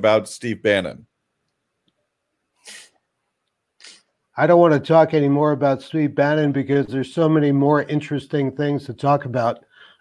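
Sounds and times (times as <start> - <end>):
man speaking: 0.0 - 1.1, 3.8 - 9.7
man breathing: 9.7 - 10.0.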